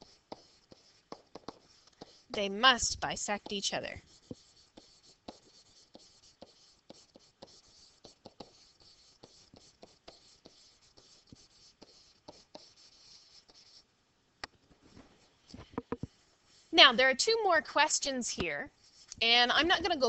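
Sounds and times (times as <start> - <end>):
stylus scratching on surface: 0.0 - 13.8, 18.0 - 20.0.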